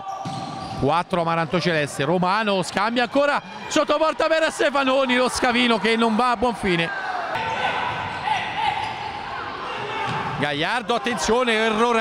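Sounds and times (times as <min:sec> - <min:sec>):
echoing hubbub of players and crowd: 0:00.0 - 0:12.0.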